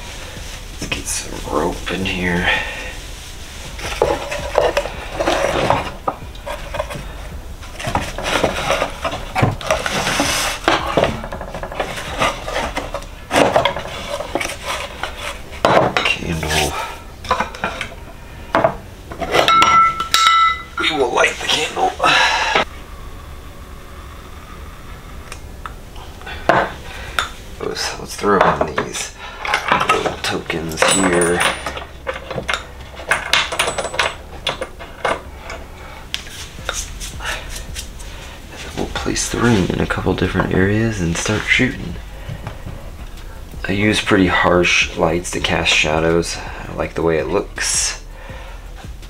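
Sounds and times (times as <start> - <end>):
rope being moved: 35.2 - 40.2.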